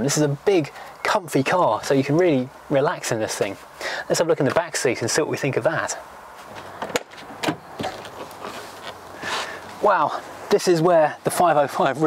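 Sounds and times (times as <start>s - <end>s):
light background noise: 0.0s - 12.0s.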